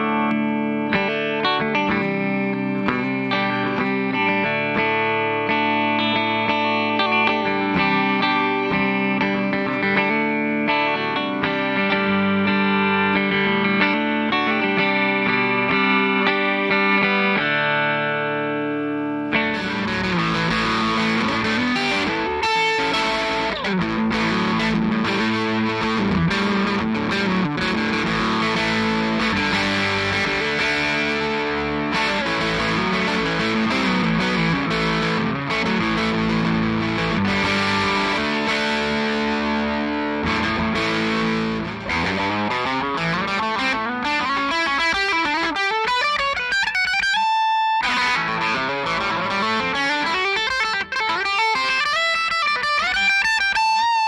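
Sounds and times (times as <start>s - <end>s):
electric guitar riffs: 0.0s - 54.0s.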